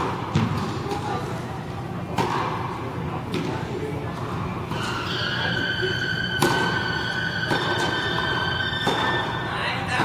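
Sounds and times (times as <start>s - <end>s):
high-pitched whine: 4.8s - 9.7s
tennis ball struck by racket: 6.4s - 6.8s.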